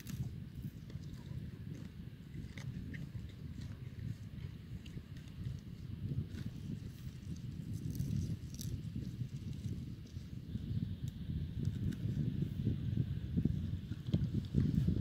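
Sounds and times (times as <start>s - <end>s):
horse hooves in loose sand: 0.0s - 15.0s
wind buffeting microphone: 0.0s - 15.0s.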